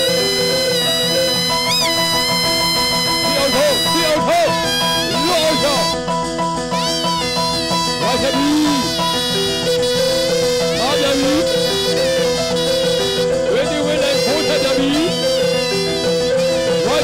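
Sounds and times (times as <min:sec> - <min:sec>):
reed wind instrument melody: 0:00.0 - 0:17.0.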